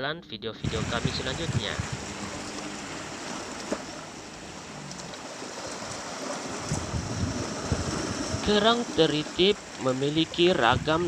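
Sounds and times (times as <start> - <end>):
waves washing against rocks: 0.7 - 11.0.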